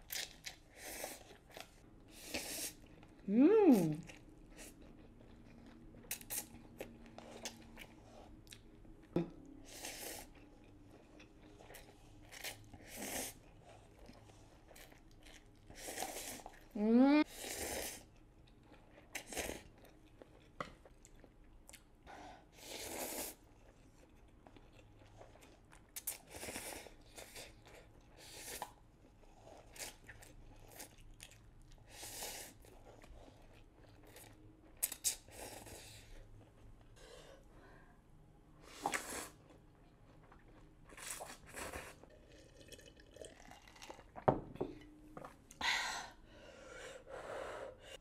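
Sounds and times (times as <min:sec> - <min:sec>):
chewing: 0:04.0 - 0:09.1, 0:38.8 - 0:44.2.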